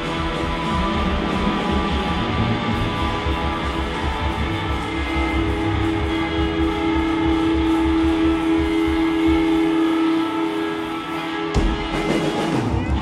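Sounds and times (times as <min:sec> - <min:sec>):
rock band droning guitar note: 0:00.0 - 0:13.0
rock band loud hit: 0:11.5 - 0:13.0.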